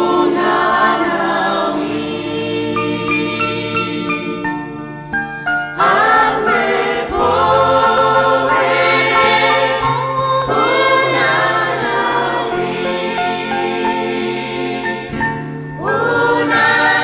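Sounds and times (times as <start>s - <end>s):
choir singing: 0.0s - 4.9s, 5.7s - 17.0s
instrumental backing: 0.0s - 17.0s.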